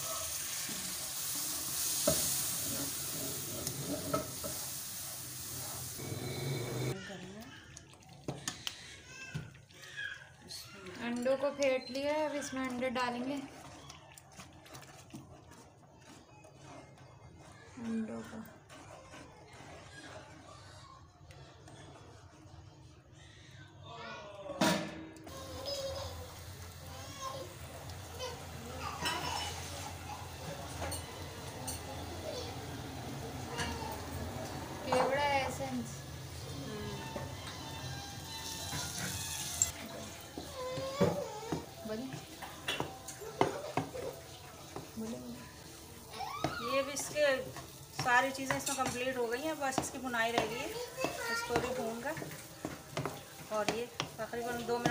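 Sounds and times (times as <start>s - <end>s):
faint sizzling: 0.0s - 9.0s, 25.2s - 54.9s
spoon stirring thick mixture in pan: 0.3s - 22.8s, 25.3s - 54.9s
eggs being poured: 0.4s - 17.0s
spatula knocking against pan: 47.9s - 54.9s.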